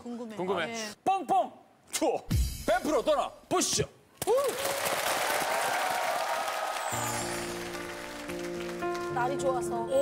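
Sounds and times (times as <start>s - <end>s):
audience applauding: 4.4s - 9.3s
soft music with sustained notes: 6.8s - 10.0s.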